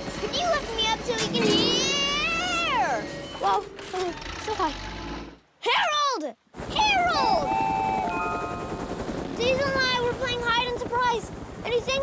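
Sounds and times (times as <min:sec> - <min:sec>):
voices: 0:00.0 - 0:04.8
cartoon helicopter rotor chopping: 0:00.0 - 0:04.9, 0:06.7 - 0:12.0.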